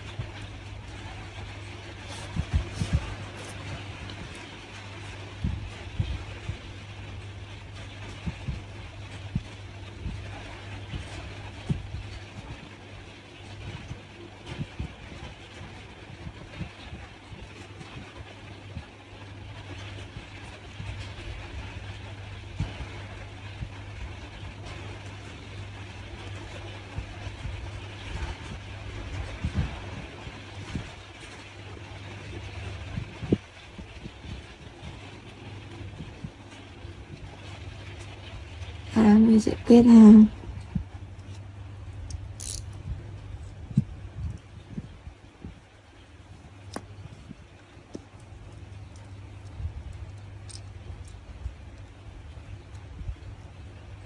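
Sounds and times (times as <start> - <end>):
low background hum: 0.0 - 54.0.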